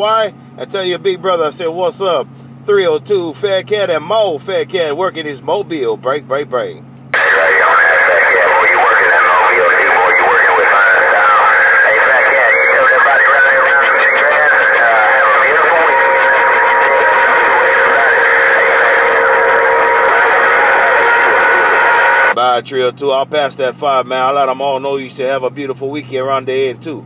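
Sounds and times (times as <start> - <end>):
radio whistling tones: 7.2 - 22.4
tinny radio voices talking: 7.2 - 22.4.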